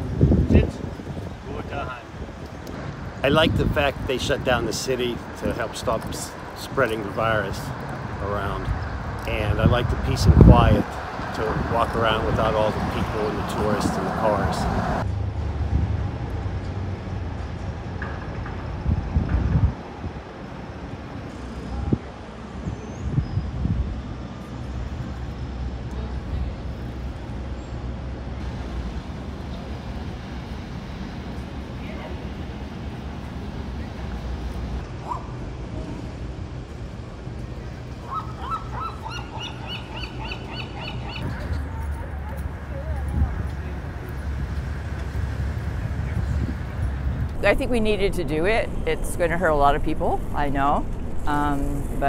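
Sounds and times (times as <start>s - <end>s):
low street rumble: 0.0s - 52.0s
bird calling repeated notes: 38.1s - 41.2s.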